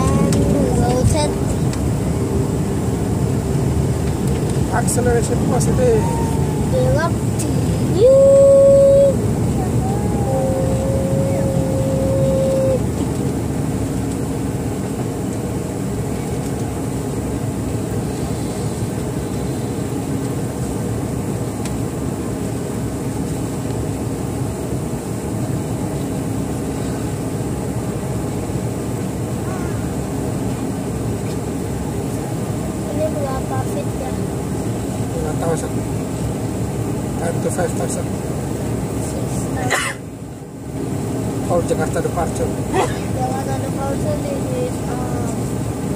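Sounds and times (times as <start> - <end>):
jet engines rumbling: 0.0 - 45.9
steady whine: 0.0 - 45.9.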